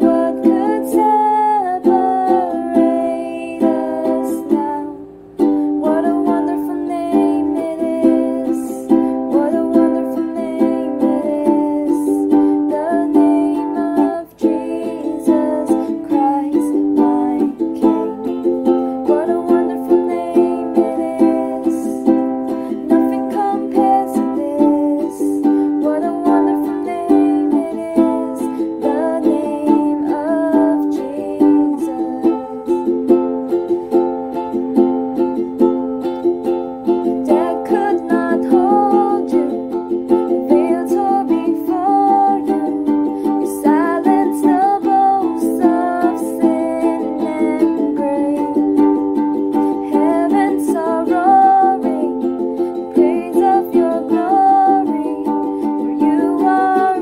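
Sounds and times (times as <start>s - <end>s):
ukulele strumming: 0.0s - 57.0s.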